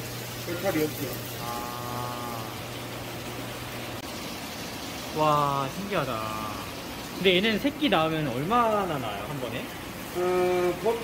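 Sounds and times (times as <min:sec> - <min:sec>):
water circulating and splashing: 0:00.0 - 0:11.0
drawn-out vocal sound: 0:01.4 - 0:02.7.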